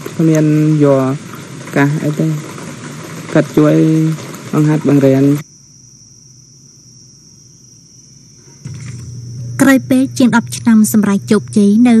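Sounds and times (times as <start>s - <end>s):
crickets trilling: 0.0s - 12.0s
faint low hum: 0.0s - 12.0s.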